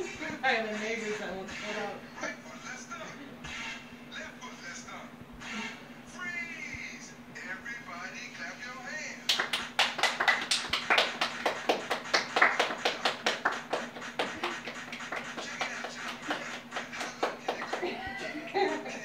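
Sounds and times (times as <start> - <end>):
rapid rhythmic hand clapping: 9.3 - 18.8.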